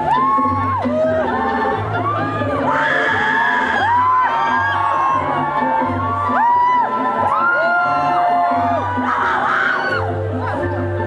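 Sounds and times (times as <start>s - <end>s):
crowd whooping and singing: 0.0s - 11.0s.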